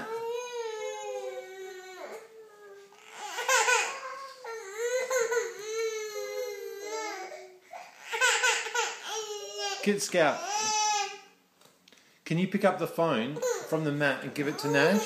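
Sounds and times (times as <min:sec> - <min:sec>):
infant crying: 0:00.0 - 0:11.4, 0:13.4 - 0:15.0.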